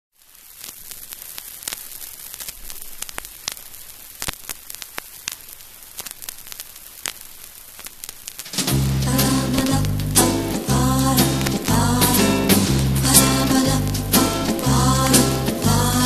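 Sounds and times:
vinyl record hiss: 0.1s - 16.0s
vinyl clicks and pops: 0.6s - 16.0s.

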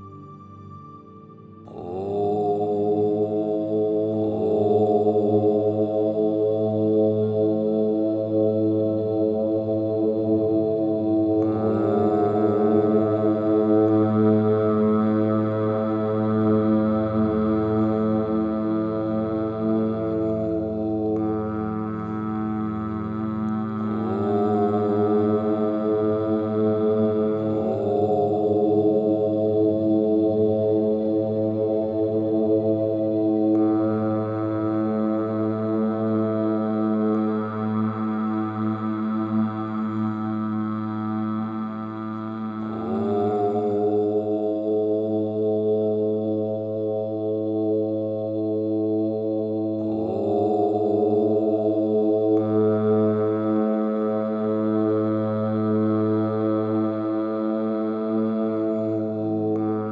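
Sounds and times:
low chanting voice: 0.0s - 59.9s
steady droning tone: 0.0s - 59.9s.

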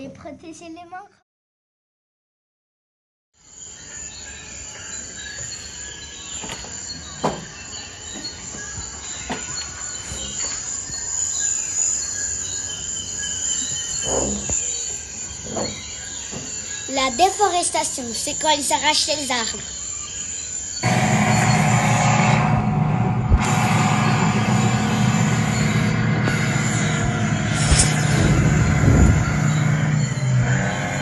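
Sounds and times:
insects shrilling: 3.4s - 21.8s, 23.8s - 31.0s
brief sharp sounds: 20.8s - 29.1s.

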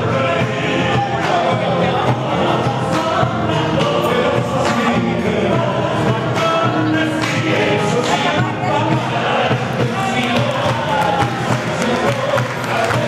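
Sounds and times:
voices singing in chorus: 0.0s - 13.0s.

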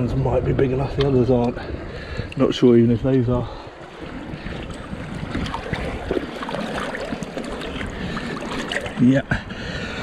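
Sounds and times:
seawater sloshing and splashing: 3.5s - 10.0s.

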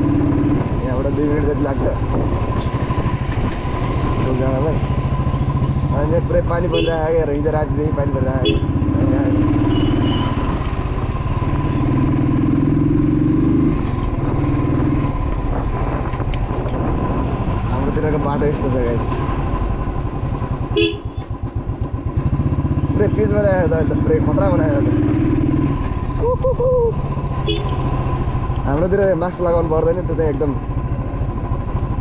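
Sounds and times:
motorcycle engine running: 0.0s - 32.0s.

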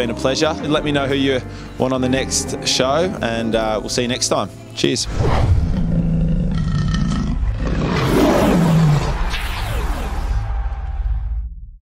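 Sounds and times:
lion roaring: 5.1s - 9.3s.

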